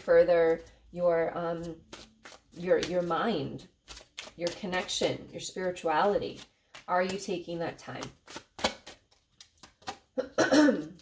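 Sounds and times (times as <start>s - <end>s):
woman coughing: 10.2s - 11.0s.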